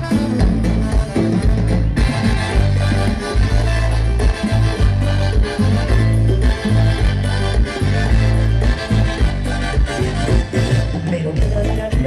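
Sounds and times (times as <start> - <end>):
heavy bass line: 0.0 - 12.0
latin dance music: 0.0 - 12.0.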